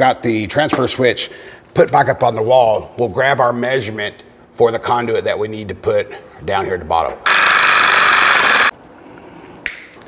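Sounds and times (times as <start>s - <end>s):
reciprocating saw cutting metal: 7.3s - 8.7s.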